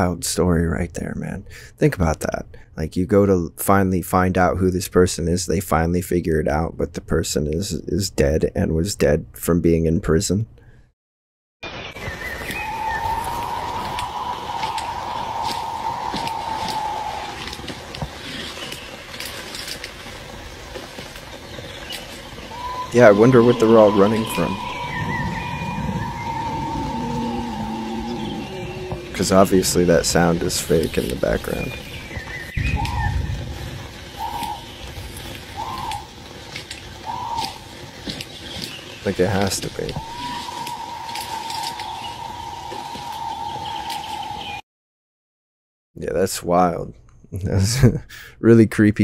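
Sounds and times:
footsteps crunching dry leaves: 12.1s - 29.1s, 29.8s - 44.6s
high-pitched wail: 12.6s - 17.6s, 22.5s - 29.4s
low rumble: 21.9s - 38.0s
short hooting call: 22.5s - 29.2s.

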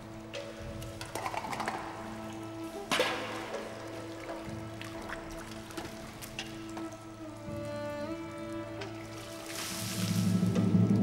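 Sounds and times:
music with held tones: 0.0s - 11.0s
water scooped and poured: 9.2s - 10.4s
loud water splash: 9.4s - 10.6s.

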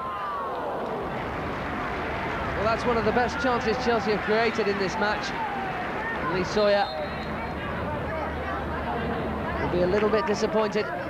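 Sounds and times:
football crowd noise: 0.0s - 11.0s.

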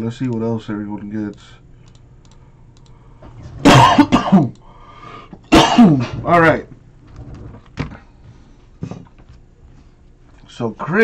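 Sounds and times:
man coughing: 3.6s - 4.6s, 5.5s - 6.3s.

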